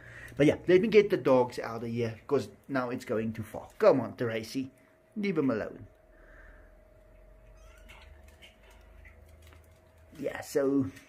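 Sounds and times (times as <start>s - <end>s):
low steady hum: 0.0s - 11.0s
kitten mewing: 7.5s - 8.5s.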